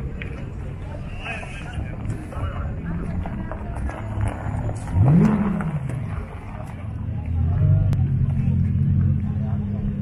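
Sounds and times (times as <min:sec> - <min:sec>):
car engine idling and revving: 0:01.9 - 0:10.0.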